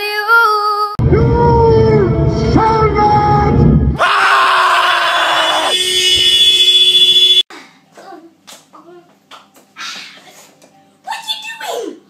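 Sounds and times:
distorted scream-like blast: 3.6 - 7.1.

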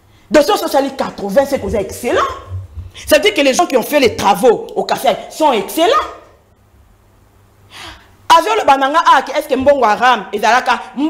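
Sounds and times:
woman speaking: 0.3 - 6.4, 8.3 - 11.0
woman gasping: 2.6 - 3.1, 7.7 - 8.2.

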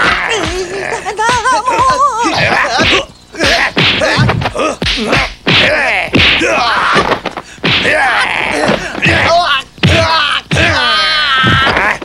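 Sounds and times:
fighters shouting and grunting: 0.0 - 12.0
whacks of blows: 2.4 - 12.0.

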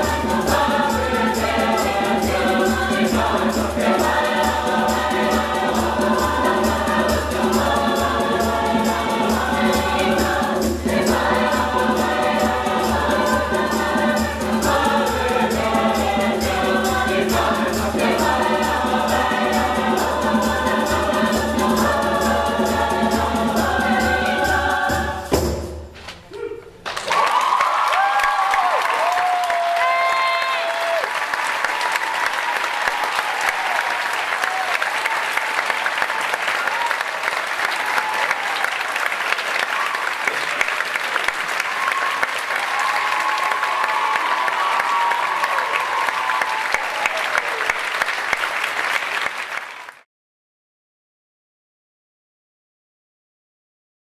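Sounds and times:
choir singing: 0.0 - 25.7
hand drums: 0.0 - 26.0
audience applause: 26.8 - 50.0
audience whoops and cheers: 26.9 - 49.0.

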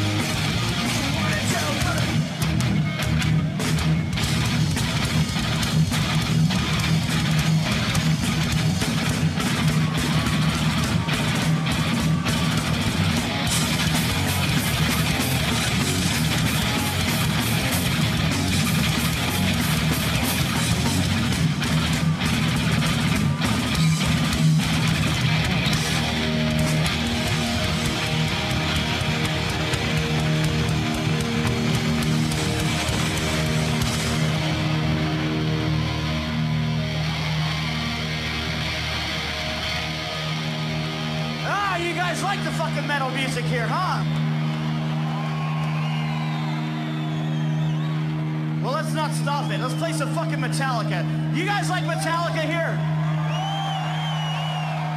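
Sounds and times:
crowd noise: 0.0 - 54.9
rock band playing live: 0.0 - 54.9
whistles: 45.4 - 48.2, 53.3 - 54.9.

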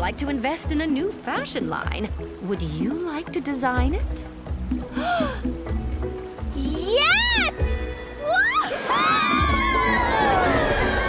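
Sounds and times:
cartoon background music: 0.0 - 11.0
girl squealing: 6.8 - 7.6, 8.2 - 11.0.

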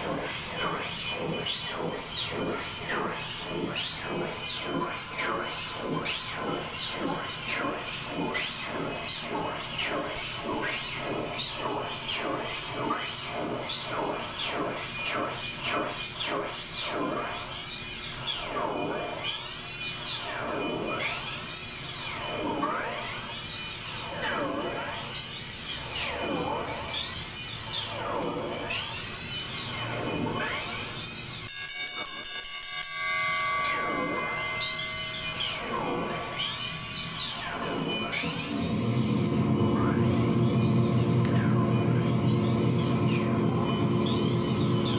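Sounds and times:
pulsing drone: 0.0 - 44.9
steady held tones: 31.4 - 44.9.

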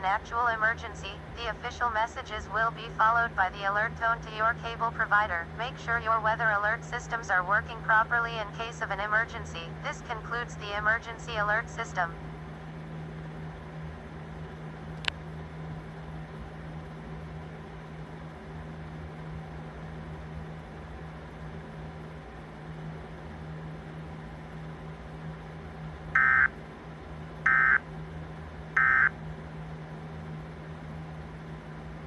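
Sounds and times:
steady low tv hum: 0.0 - 32.0.

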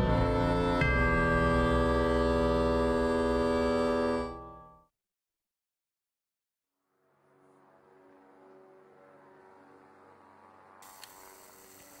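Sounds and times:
brighter hiss: 10.8 - 12.0
light hiss: 10.8 - 12.0.

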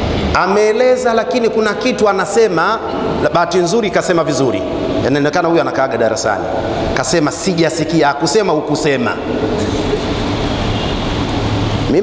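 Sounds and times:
loud rushing noise: 0.0 - 12.0.

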